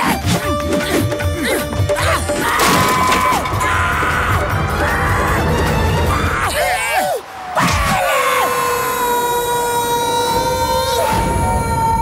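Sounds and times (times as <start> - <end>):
cartoon characters screaming: 2.0 - 12.0.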